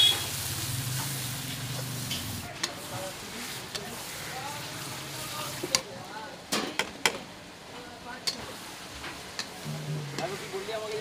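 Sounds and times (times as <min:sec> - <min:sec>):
paste sizzling in a metal pan: 0:00.0 - 0:05.9, 0:08.2 - 0:11.0.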